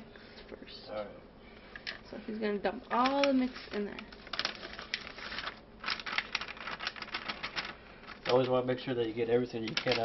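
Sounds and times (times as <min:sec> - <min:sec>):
packet crinkling and tapping: 0:02.9 - 0:08.6, 0:09.6 - 0:10.0.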